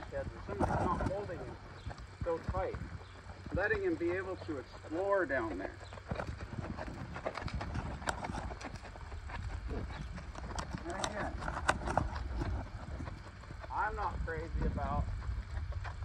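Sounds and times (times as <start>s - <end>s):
horse hoofbeats on sand: 0.0s - 16.0s
steady low rumble: 0.0s - 16.0s.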